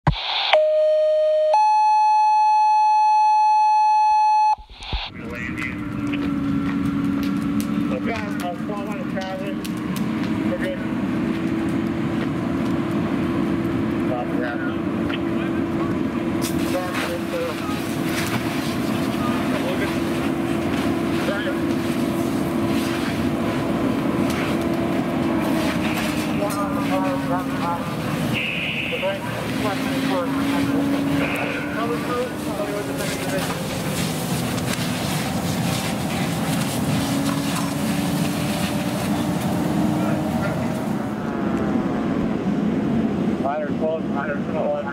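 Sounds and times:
two-tone paging tones: 0.5 - 4.7
fire engine droning: 0.5 - 44.9
radio chatter: 4.1 - 6.3, 14.1 - 22.0, 25.2 - 34.1
voices: 4.9 - 12.7, 13.4 - 41.9.

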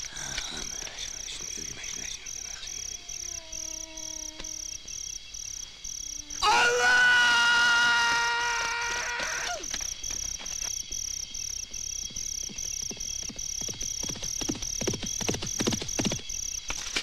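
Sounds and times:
insects chirping: 0.0 - 17.0.

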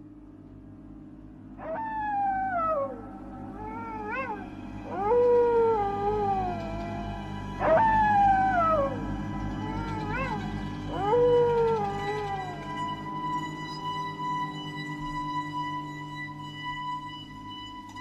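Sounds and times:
low drone: 0.0 - 18.0
howl-like wails: 1.6 - 18.0.

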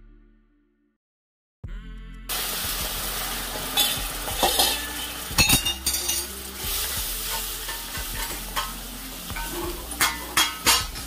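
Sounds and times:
flour sizzling and bubbling: 2.3 - 11.0
ladle scraping and clinking pan: 3.5 - 11.0.

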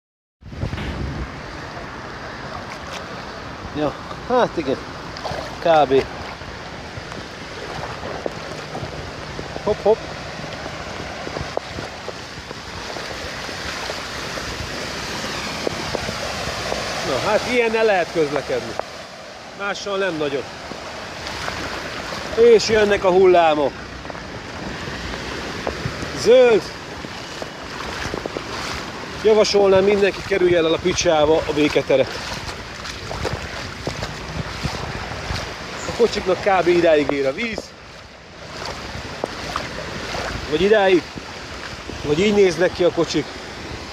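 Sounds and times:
heavy rain and running floodwater: 0.4 - 43.9
wind rumbling on microphone: 0.4 - 43.9
truck splashing through deep water: 0.6 - 43.9.

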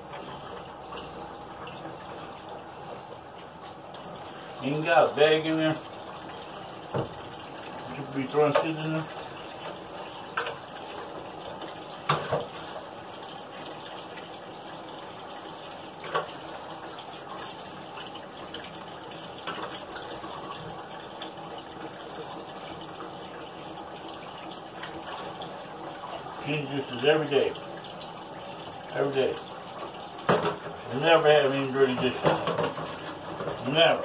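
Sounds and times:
tap running into sink: 6.8 - 10.6, 12.0 - 12.7, 30.2 - 33.8
dishes clinking: 32.0 - 33.6.

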